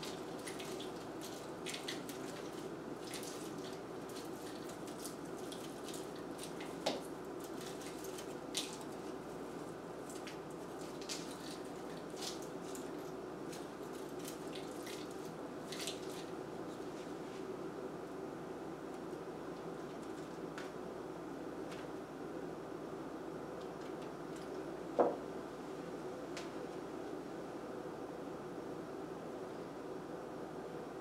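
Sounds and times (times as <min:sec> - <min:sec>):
faint room hum: 0:00.0 - 0:31.0.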